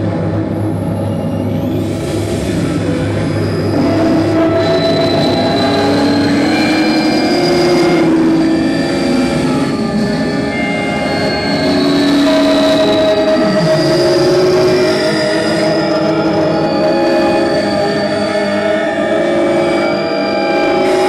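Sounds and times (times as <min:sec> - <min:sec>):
electronic drone music: 0:00.0 - 0:21.0.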